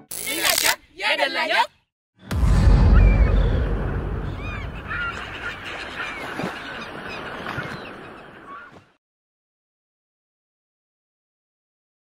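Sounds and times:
seagulls crying: 4.2s - 9.0s
waves rushing: 4.3s - 8.6s.

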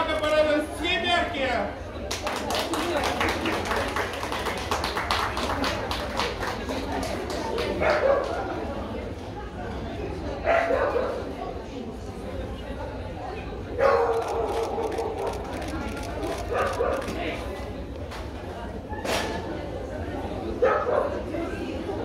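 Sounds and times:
chatter in a hall: 0.0s - 22.0s
dog barking: 10.5s - 11.2s, 13.8s - 15.4s, 16.5s - 17.1s, 20.6s - 21.2s.

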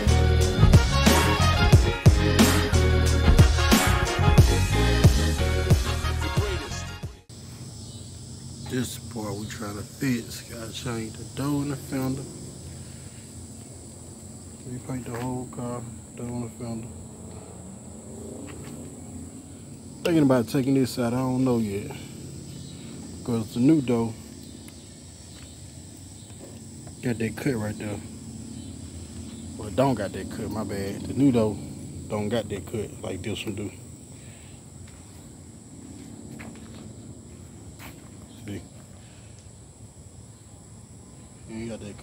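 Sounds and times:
crickets droning: 0.0s - 42.0s.

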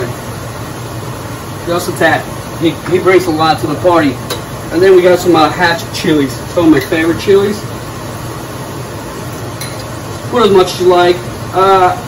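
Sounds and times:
vegetables sizzling in a pot: 0.0s - 12.0s.

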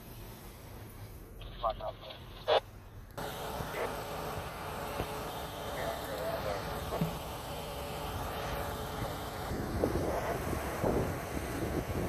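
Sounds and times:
outdoor background noise: 0.0s - 12.0s
radio scanner audio: 1.4s - 12.0s.

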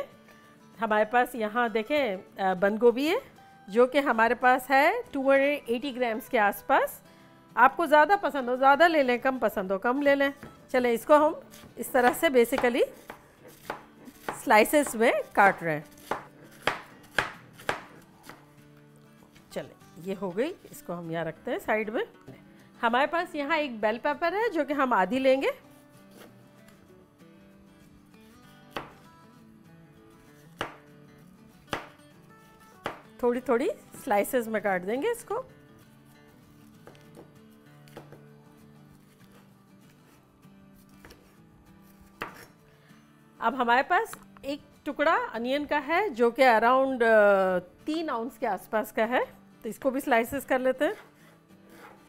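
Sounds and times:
soft background music: 0.0s - 52.0s
knife slicing cabbage on board: 11.2s - 18.6s, 25.6s - 26.8s, 28.4s - 29.1s, 30.2s - 30.9s, 31.6s - 33.1s, 36.6s - 40.2s, 40.8s - 42.6s, 50.8s - 52.0s
knife tapping on cutting board: 32.8s - 33.0s.

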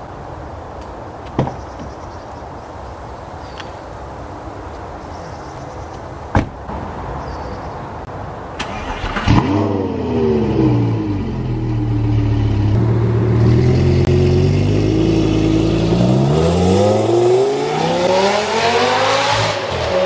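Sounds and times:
sports car engine revving: 8.8s - 20.0s.

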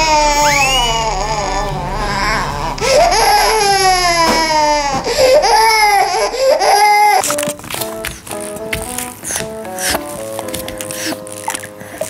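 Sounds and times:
baby crying: 0.0s - 7.5s, 9.2s - 12.0s.

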